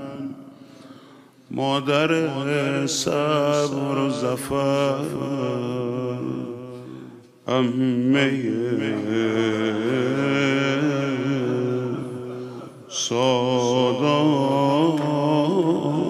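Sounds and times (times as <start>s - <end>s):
man chanting a lament: 0.0s - 0.7s, 1.5s - 16.0s.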